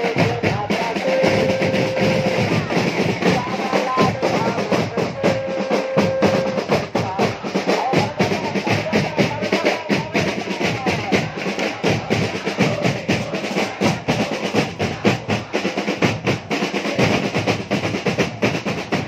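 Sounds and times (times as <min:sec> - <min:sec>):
drums beating fast rhythm: 0:00.0 - 0:19.0
stadium crowd chanting: 0:00.0 - 0:19.0.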